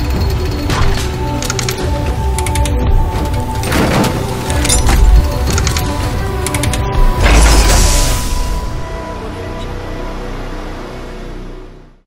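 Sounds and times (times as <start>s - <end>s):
music: 0.0s - 12.0s
mechanical clicking and ratcheting: 1.2s - 6.9s.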